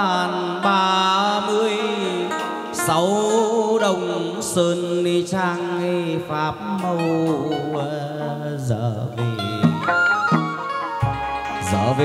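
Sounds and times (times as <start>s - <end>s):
person singing wavering notes: 0.0s - 12.0s
lute and percussion: 9.2s - 12.0s
sharp percussive strikes: 9.3s - 11.7s.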